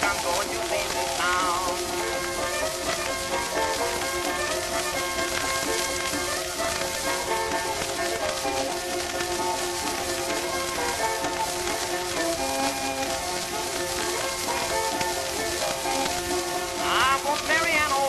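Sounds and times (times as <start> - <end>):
record hiss and crackle: 0.0 - 18.0
string band playing instrumental: 0.0 - 18.0.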